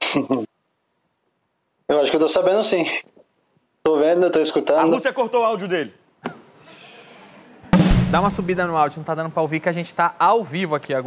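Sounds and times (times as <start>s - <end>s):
drum kit hit with crash: 7.7s - 8.8s.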